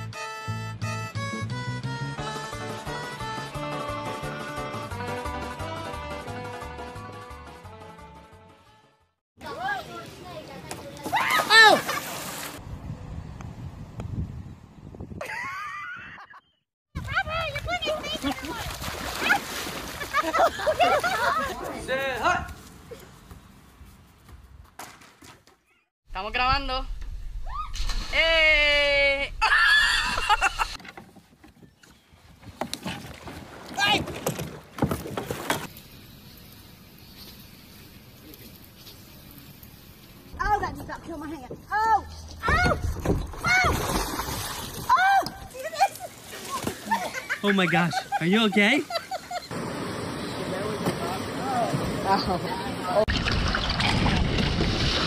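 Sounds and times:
water splash: 11.0s - 12.6s, 17.8s - 21.4s, 42.8s - 45.0s, 53.0s - 55.0s
wind buffeting microphone: 12.6s - 15.2s.

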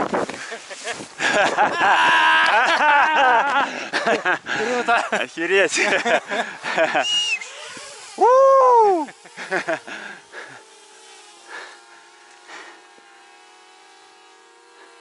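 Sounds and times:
man whooping: 1.7s - 3.6s, 6.8s - 9.2s
scattered short sounds: 4.6s - 15.0s
faint hum of held tones: 6.1s - 15.0s.

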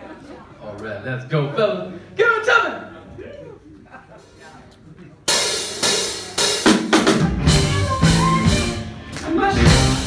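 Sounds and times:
drum kit hits: 5.3s - 10.0s
rock band playing: 5.3s - 10.0s.

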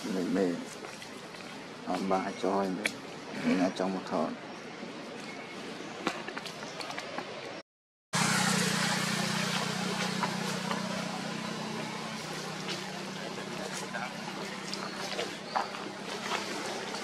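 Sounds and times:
outdoor ambience: 0.0s - 7.6s, 8.2s - 17.0s
steady low motor hum: 8.2s - 17.0s.

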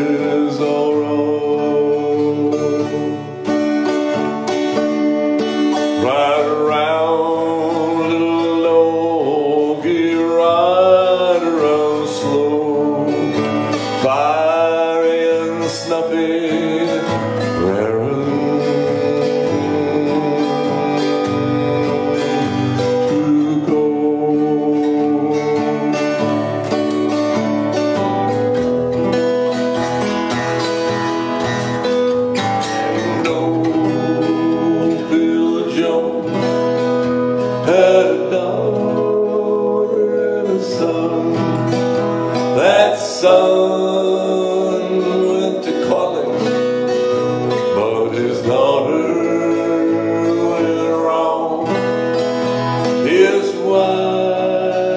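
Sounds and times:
man singing wordless notes: 0.0s - 28.7s, 30.6s - 54.9s
acoustic guitar playing: 0.0s - 54.9s.

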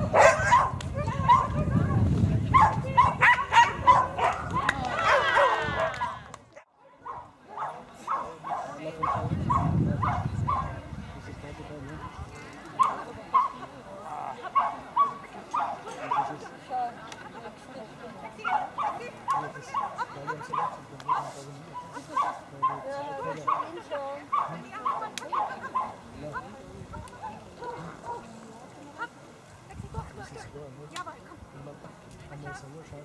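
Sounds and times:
dog barking rapidly: 0.0s - 1.7s, 2.5s - 6.2s, 7.0s - 10.7s, 18.4s - 22.9s, 23.5s - 26.0s.

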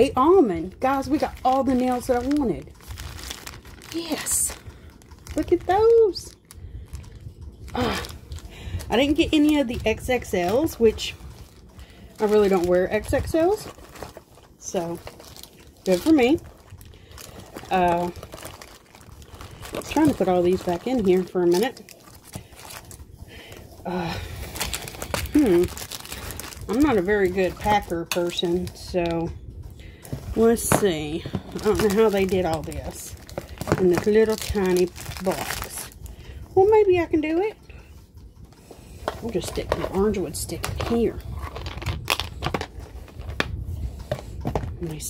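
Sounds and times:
handling rustle: 0.8s - 29.2s, 29.8s - 36.1s.

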